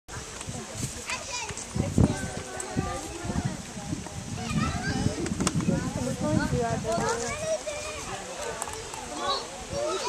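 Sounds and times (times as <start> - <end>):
background chatter of voices: 0.1 - 10.0.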